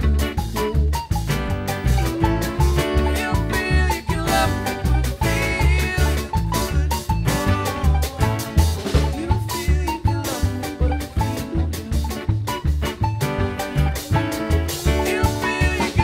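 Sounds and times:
string band playing: 0:00.0 - 0:16.0.

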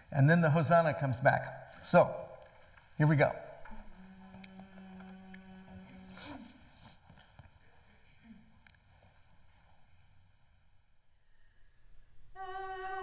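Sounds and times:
faint clicks and shuffles: 0:01.8 - 0:10.8
steady sung pitch note: 0:12.3 - 0:13.0.

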